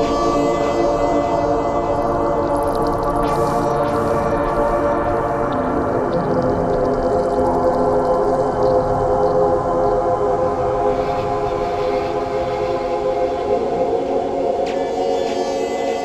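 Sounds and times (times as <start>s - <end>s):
ambient electronic drone music: 0.0s - 16.0s.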